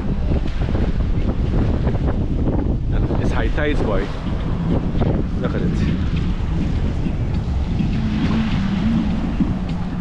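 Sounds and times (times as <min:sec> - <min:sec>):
sea water washing against seawall: 0:00.0 - 0:10.0
wind buffeting microphone: 0:00.0 - 0:10.0.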